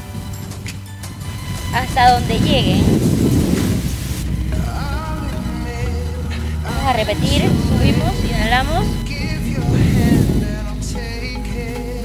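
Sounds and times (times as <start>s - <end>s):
soft background music: 0.0s - 12.0s
wind buffeting microphone: 0.0s - 12.0s
steady low hum: 1.4s - 12.0s.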